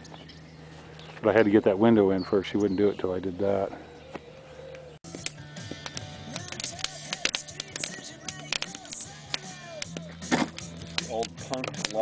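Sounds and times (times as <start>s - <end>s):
steady low hum: 0.0s - 12.0s
wood fire crackling: 5.0s - 12.0s
fire pops: 5.1s - 12.0s.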